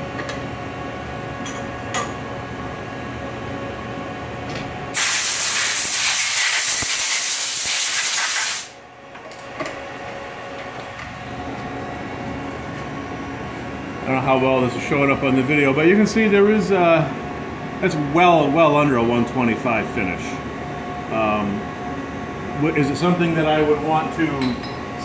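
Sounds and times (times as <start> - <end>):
machine shop hum: 0.0 - 25.0
compressed air hissing: 5.0 - 8.8.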